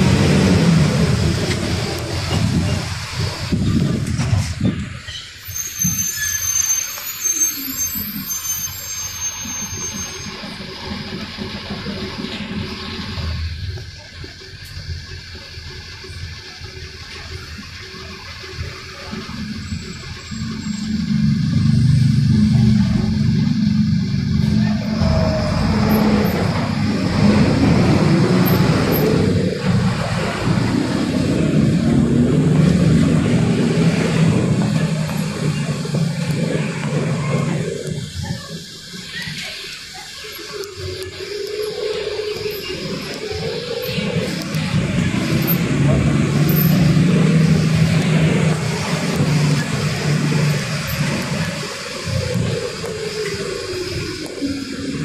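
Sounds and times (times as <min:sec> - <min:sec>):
bus engine and road rumble: 0:00.0 - 0:55.0.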